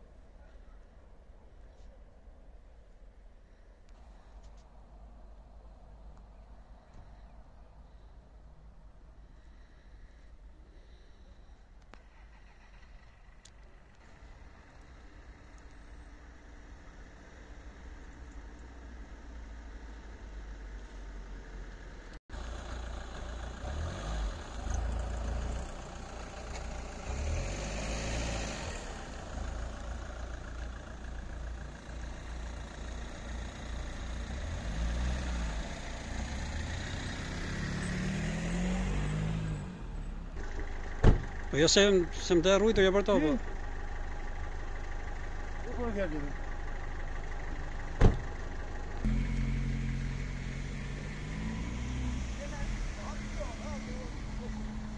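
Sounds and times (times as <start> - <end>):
car engines idling: 0.0 - 38.2, 39.0 - 54.9.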